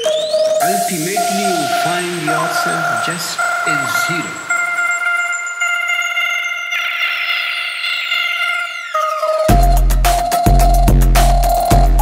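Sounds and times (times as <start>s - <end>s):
high gliding whistling tones: 0.0s - 9.7s.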